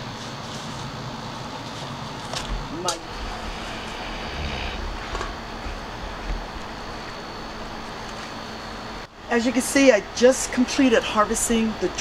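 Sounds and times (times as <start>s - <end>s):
outdoor background hum: 0.0s - 12.0s.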